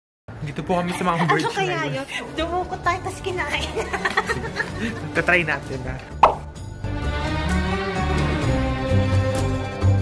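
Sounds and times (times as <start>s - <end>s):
plop sound effect: 6.2s - 6.4s.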